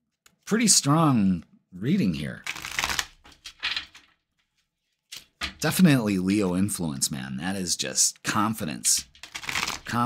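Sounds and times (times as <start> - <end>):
card stock rustling: 9.2 - 10.0.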